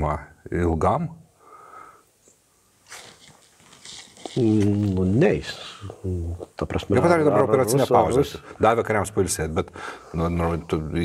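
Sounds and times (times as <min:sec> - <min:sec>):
person breathing: 0:01.4 - 0:02.1, 0:09.7 - 0:10.2.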